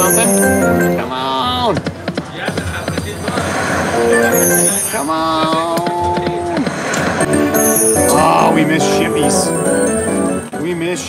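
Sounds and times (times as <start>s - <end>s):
electronic game music: 0.0s - 1.1s, 3.0s - 5.6s, 7.0s - 10.6s
drum-like hits: 1.7s - 4.7s, 5.4s - 7.6s
slot machine clicks: 4.0s - 5.0s, 7.0s - 10.1s.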